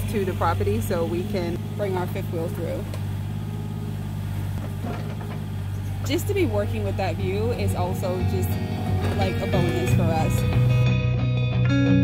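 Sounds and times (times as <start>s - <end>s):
excavator diesel engine running: 0.0s - 10.9s.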